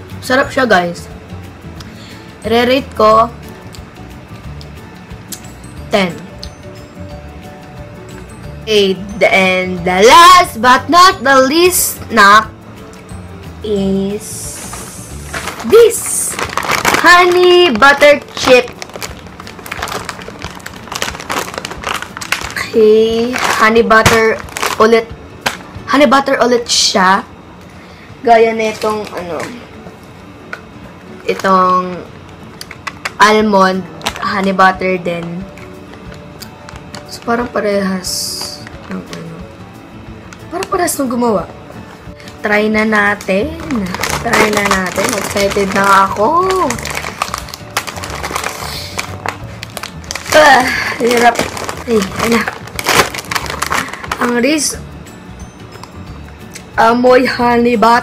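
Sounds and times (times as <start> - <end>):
light background music: 0.0 - 58.0
snack bag crinkling: 14.2 - 25.7, 43.1 - 54.4.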